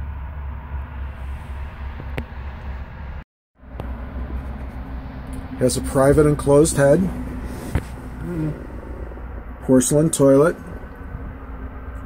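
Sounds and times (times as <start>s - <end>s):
low background hum: 4.2s - 12.0s
faint vocal sound: 8.0s - 9.2s.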